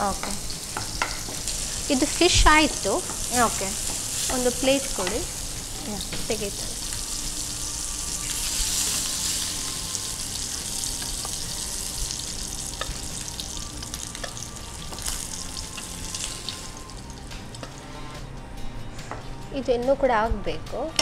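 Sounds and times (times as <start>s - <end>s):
fish sizzling in a frying pan: 0.0s - 17.9s.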